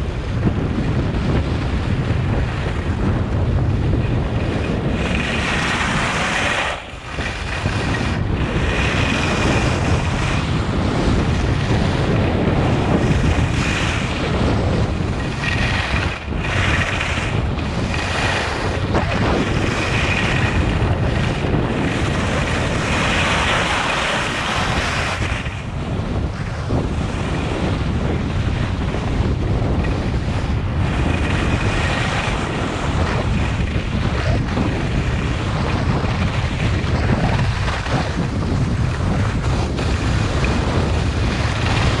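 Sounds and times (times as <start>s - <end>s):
wind rumbling on microphone: 0.0s - 42.0s
skis hissing over snow: 5.1s - 10.2s.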